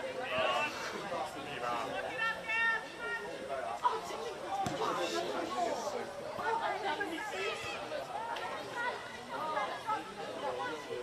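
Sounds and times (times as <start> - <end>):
voices calling and chattering: 0.0 - 11.0.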